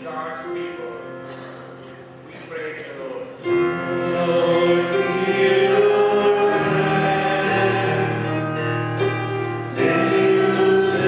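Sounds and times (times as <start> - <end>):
church choir singing: 3.4 - 11.0.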